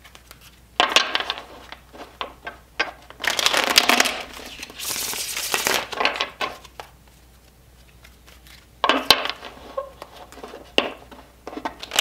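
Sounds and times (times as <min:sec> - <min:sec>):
cards fluttering while shuffled: 0:03.2 - 0:08.7.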